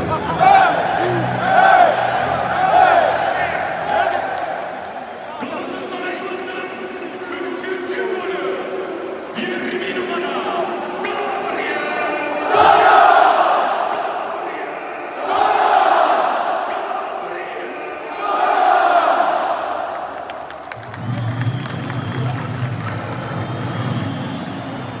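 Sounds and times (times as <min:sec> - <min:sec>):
stadium crowd chanting: 0:00.0 - 0:05.3, 0:11.5 - 0:20.7.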